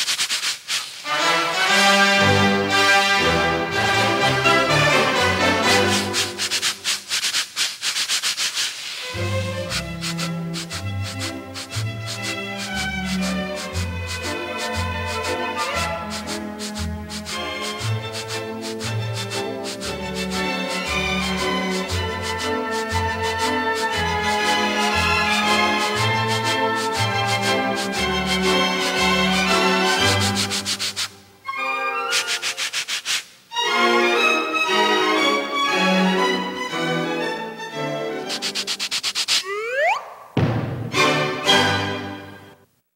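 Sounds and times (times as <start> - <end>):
scratching scalp and hair: 0.0 - 1.4, 5.5 - 31.2, 32.1 - 33.4, 38.3 - 39.5
orchestral string music: 1.1 - 6.8, 9.0 - 32.6, 33.5 - 38.8, 40.7 - 42.7.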